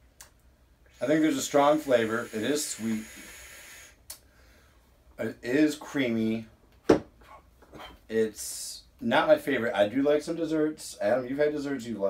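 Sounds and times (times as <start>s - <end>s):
man inhaling through vape: 0.9s - 4.8s
short sharp breath: 2.1s - 4.9s.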